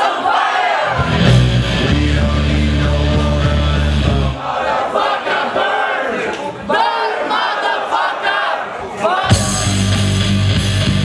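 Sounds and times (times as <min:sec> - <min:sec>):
crowd shouting: 0:00.0 - 0:01.8, 0:04.0 - 0:10.3.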